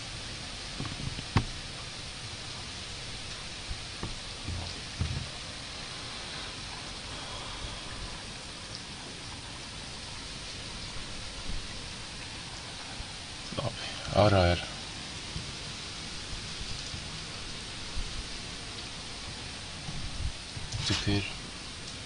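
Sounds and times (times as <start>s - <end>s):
steady rain: 0.0s - 22.0s.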